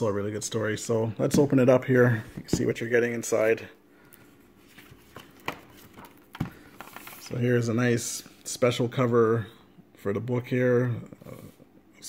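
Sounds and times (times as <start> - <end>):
book knocks: 2.3 - 2.8
paper rustling: 4.2 - 7.5.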